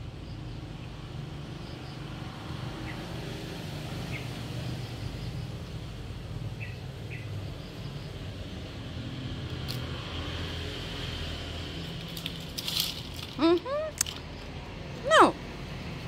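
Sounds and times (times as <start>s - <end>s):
low outdoor hum: 0.0s - 16.0s.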